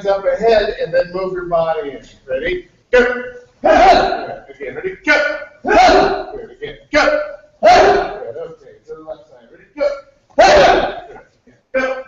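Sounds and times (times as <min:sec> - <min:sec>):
group shouting in unison: 0:03.6 - 0:04.4, 0:05.6 - 0:06.5, 0:07.6 - 0:08.4, 0:10.4 - 0:11.2.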